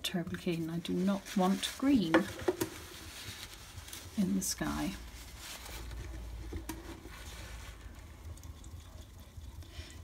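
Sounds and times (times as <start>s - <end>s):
paper towel rubbing and scratching: 0.4s - 8.1s
low room rumble: 2.7s - 10.0s.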